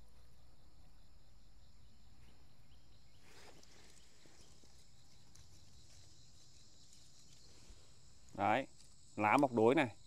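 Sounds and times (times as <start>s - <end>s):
high-pitched insect chirring: 3.9s - 10.0s.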